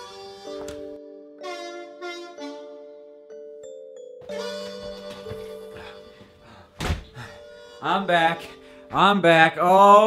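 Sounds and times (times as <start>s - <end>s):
background music: 0.0s - 10.0s
door shutting with dull thunk: 6.8s - 7.2s.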